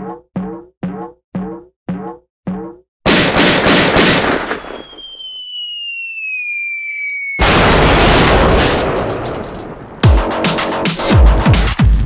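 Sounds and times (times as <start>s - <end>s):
cartoon pistol shots: 3.1s - 4.9s
falling whistle: 4.5s - 7.4s.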